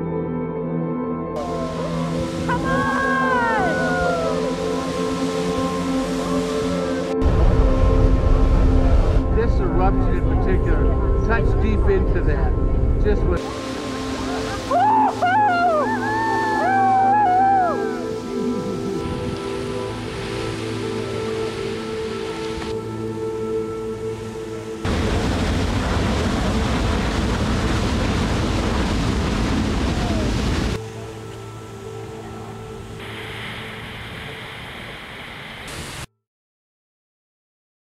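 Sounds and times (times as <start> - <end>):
slow ambient music drone: 0.0 - 25.2, 30.8 - 34.6
geyser rushing water: 1.4 - 9.9, 13.4 - 22.9, 24.0 - 36.1.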